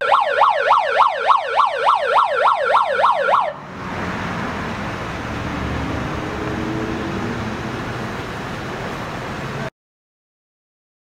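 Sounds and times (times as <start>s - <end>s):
siren yelping: 0.0s - 3.7s
steady rushing noise: 3.4s - 9.7s.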